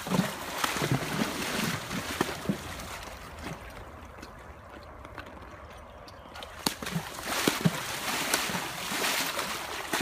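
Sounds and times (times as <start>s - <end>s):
horse hoof splashing in water: 0.0s - 10.0s.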